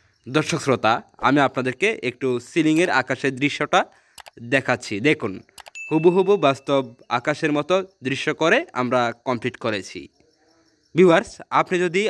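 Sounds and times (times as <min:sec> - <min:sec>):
man narrating: 0:00.3 - 0:10.1, 0:11.0 - 0:12.0.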